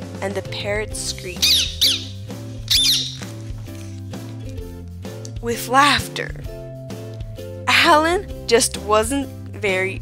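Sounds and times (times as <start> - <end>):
background music: 0.0 - 10.0
parrot screech: 1.4 - 3.3.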